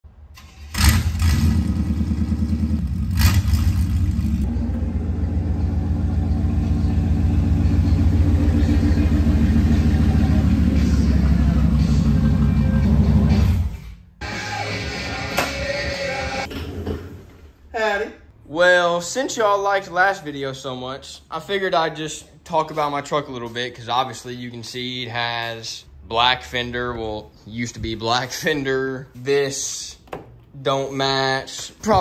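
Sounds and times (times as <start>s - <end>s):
engine exhaust rumble: 0.7s - 13.8s.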